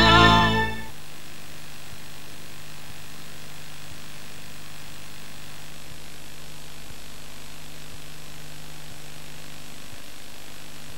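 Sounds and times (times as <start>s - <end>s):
low mains hum: 0.0s - 10.9s
tape hiss: 0.0s - 10.9s.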